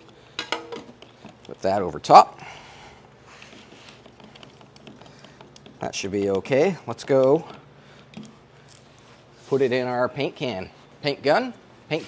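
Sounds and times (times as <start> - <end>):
man speaking: 5.8 - 7.5.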